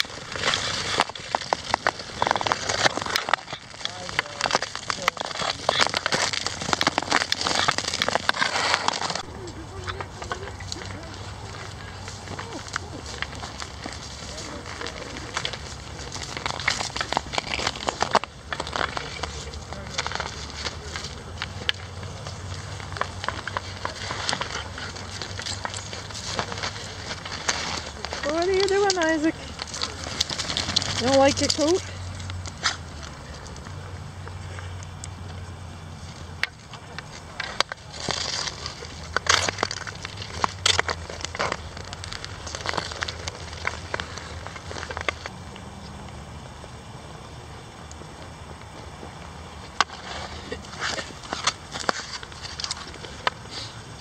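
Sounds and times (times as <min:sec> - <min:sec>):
skate blades scraping ice: 0:00.0 - 0:45.9, 0:48.8 - 0:54.0
dry grass crackling and rustling: 0:00.0 - 0:54.0.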